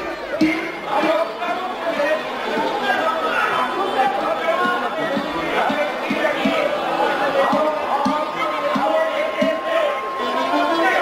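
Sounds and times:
audience chatter: 0:00.0 - 0:11.0
man talking into microphone: 0:00.0 - 0:11.0.

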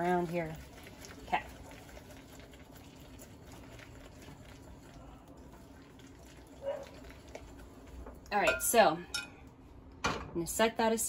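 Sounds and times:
whisk swishing in bowl: 0:00.0 - 0:05.2.

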